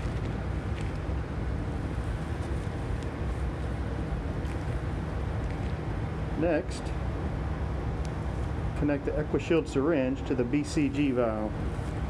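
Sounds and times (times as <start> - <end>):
blower airflow noise: 0.0 - 12.0.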